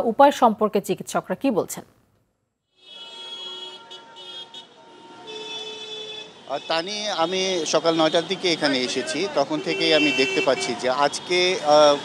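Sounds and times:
vehicle horns honking: 2.7 - 12.0
traffic noise: 2.8 - 12.0.

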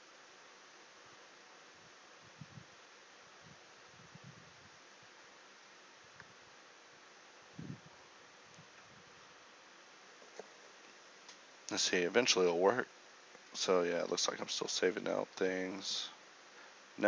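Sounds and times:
faint recording hiss: 0.0 - 17.0.

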